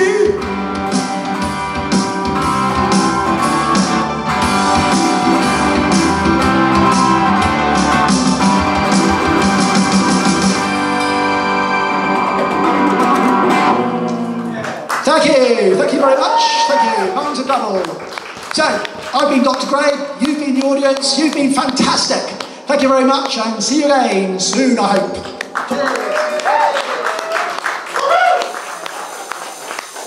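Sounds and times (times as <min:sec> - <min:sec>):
electric guitar playing: 0:00.0 - 0:14.9
steady beat: 0:00.2 - 0:10.9.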